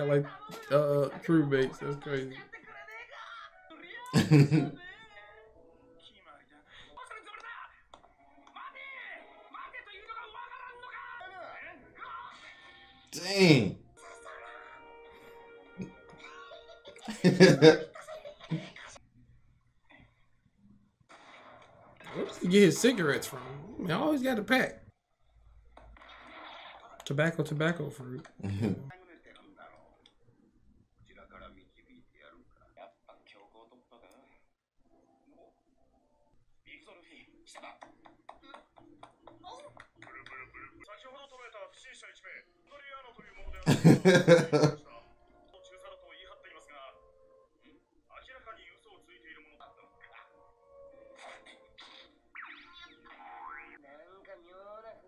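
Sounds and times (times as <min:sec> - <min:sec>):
cartoon characters' voices: 0:00.0 - 0:02.6, 0:04.0 - 0:04.8, 0:13.2 - 0:13.8, 0:17.1 - 0:17.9, 0:28.4 - 0:28.9.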